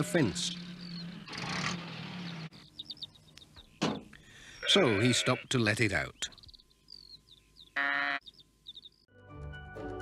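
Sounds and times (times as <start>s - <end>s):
birdsong chirps: 0.0s - 9.1s
sheep bleating: 4.6s - 5.6s.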